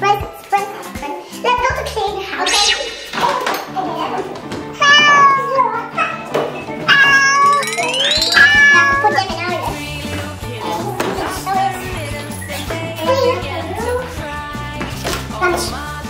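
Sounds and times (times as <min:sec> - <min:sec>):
upbeat background music: 0:00.0 - 0:16.0.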